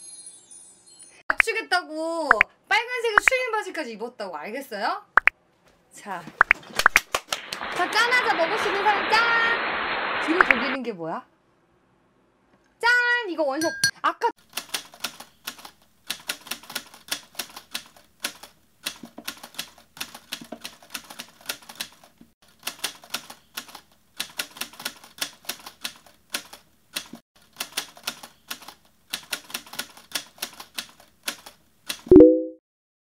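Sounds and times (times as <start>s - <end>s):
typewriter keys clacking: 14.5s - 32.1s
tone falling in pitch: 32.1s - 32.6s.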